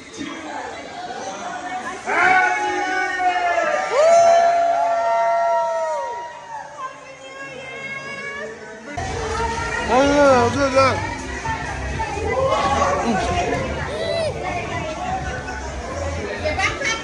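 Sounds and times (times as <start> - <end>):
crowd chattering and cheering: 0.0 - 17.0.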